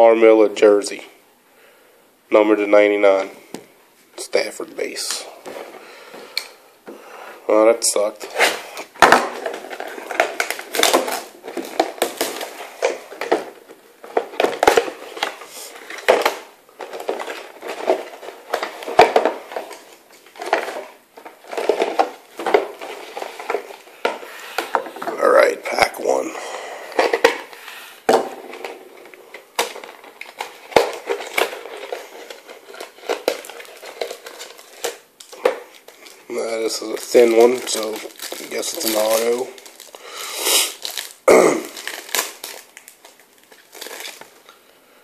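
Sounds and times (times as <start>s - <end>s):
wrappers crinkling and tearing: 8.2s - 26.2s, 28.6s - 44.5s.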